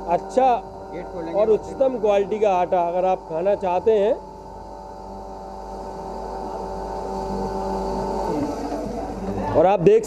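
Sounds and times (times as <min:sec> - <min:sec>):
flour mill motor hum and whine: 0:00.0 - 0:10.0.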